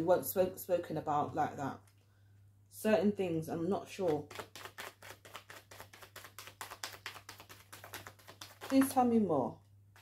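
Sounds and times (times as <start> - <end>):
cards being shuffled: 4.0 - 9.0.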